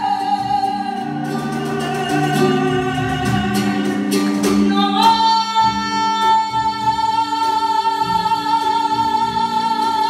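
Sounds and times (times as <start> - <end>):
guitar accompaniment: 0.0 - 10.0
woman singing flamenco-style: 0.0 - 10.0.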